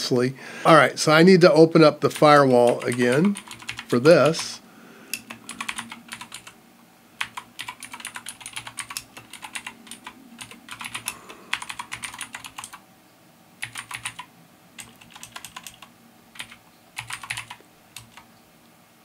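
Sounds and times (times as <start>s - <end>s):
computer keyboard typing: 2.6s - 4.6s, 5.2s - 6.6s, 7.2s - 12.8s, 13.6s - 18.3s.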